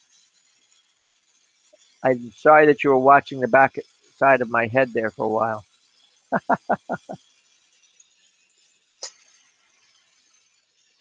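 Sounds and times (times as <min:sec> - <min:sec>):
torch flame hissing: 0:00.0 - 0:11.0
man laughing: 0:06.3 - 0:07.2.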